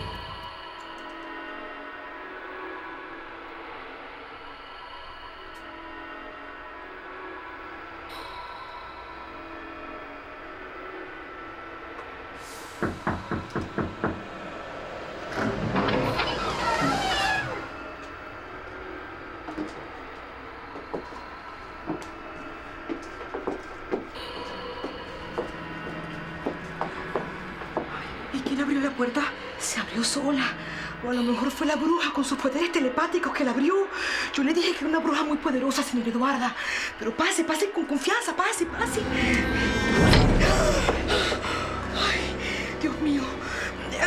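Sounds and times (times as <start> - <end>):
eerie background music: 0.0 - 44.0
door swinging open: 15.3 - 17.7
light footsteps: 20.7 - 28.6.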